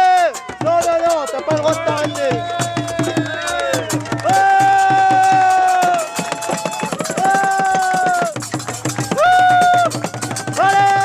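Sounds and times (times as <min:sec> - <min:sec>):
hand drums playing fast rhythm: 0:00.0 - 0:11.0.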